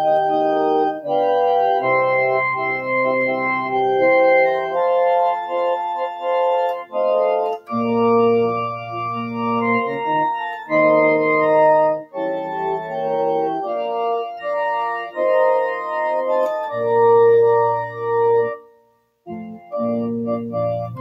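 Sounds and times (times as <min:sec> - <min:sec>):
organ hymn on keyboard: 0:00.0 - 0:21.0.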